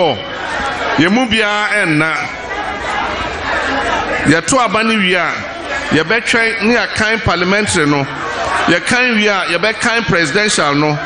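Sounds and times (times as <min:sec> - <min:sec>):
crowd chattering and calling out: 0:00.0 - 0:11.0
man's voice: 0:01.0 - 0:02.4, 0:04.2 - 0:08.1, 0:08.7 - 0:11.0.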